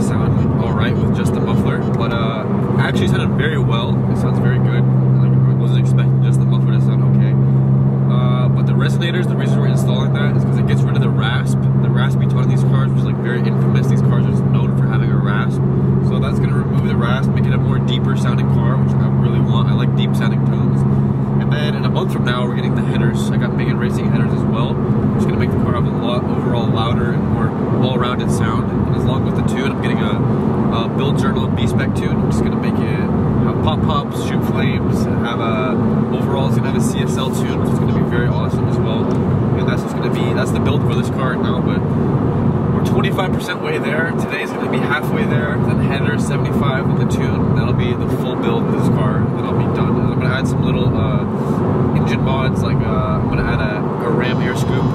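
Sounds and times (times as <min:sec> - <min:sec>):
car engine droning inside cabin: 0:00.0 - 0:54.9.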